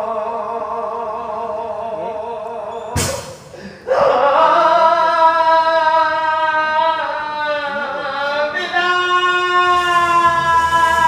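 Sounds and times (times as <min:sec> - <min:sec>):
man singing long note: 0:03.9 - 0:11.0.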